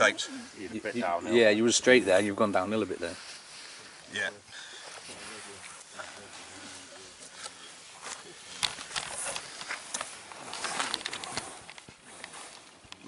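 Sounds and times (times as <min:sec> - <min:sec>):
bark and wood rustling on grass: 0:00.0 - 0:13.0.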